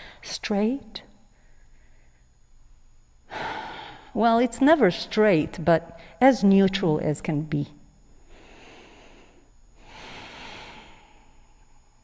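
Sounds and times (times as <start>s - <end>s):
person breathing: 1.3s - 2.4s, 3.3s - 4.2s, 8.3s - 12.0s.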